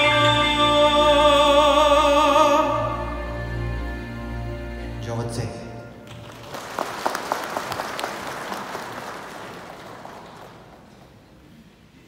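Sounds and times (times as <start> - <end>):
audience applauding: 6.0 - 11.5.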